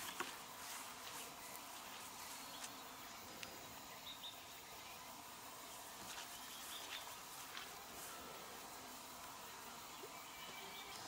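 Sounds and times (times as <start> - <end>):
insects buzzing and chirping: 0.0 - 11.0.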